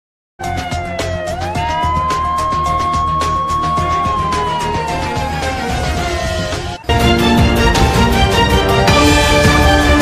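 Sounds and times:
siren-like sliding tone: 0.5 - 6.9.

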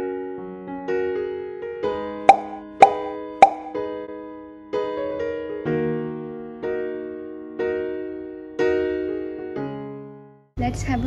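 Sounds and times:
soft electric piano music: 0.0 - 10.4
pop sound effects: 2.3 - 3.8.

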